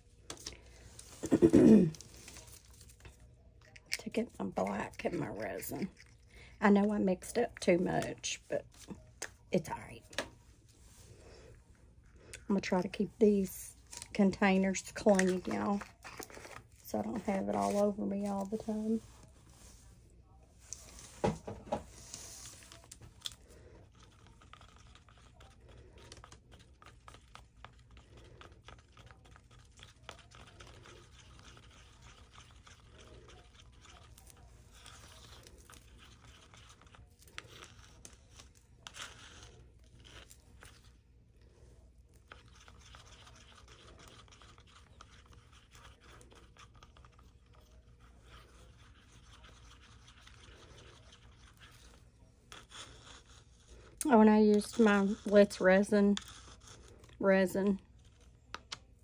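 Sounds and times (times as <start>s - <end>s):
stir stick scraping plastic cup: 0.0s - 19.9s, 20.7s - 59.0s.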